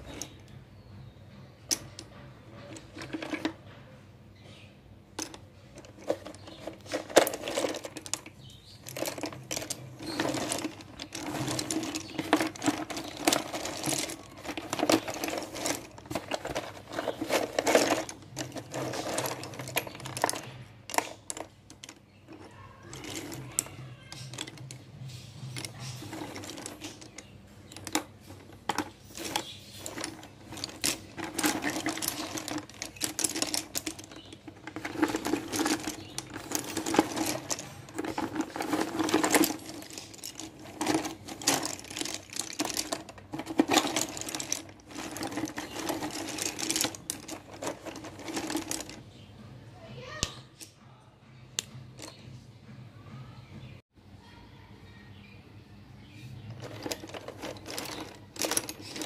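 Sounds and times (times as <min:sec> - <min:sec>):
slate pencils clattering in a box: 0:00.0 - 0:00.6, 0:01.7 - 0:03.8, 0:05.2 - 0:49.2, 0:51.6 - 0:52.2, 0:56.4 - 0:59.0.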